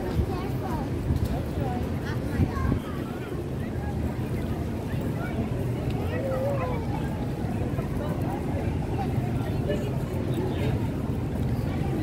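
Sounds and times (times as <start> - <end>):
faint voices of passers-by: 0.0 - 12.0.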